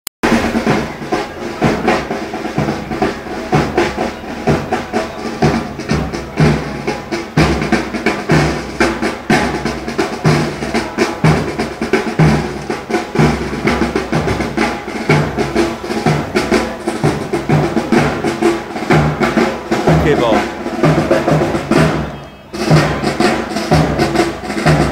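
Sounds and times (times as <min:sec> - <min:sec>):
bass drum march beat: 0:00.2 - 0:24.9
snare drum rolls: 0:00.2 - 0:24.9.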